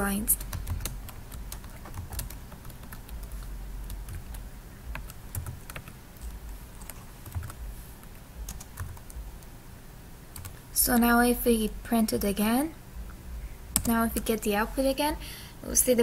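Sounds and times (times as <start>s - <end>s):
computer keyboard typing: 0.2s - 9.2s, 10.4s - 10.6s, 13.8s - 14.4s.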